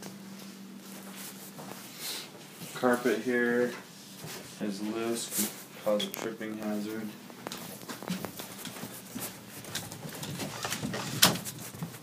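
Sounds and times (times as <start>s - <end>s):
handheld camera rustling: 6.2s - 12.0s
footsteps going down stairs: 7.1s - 12.0s.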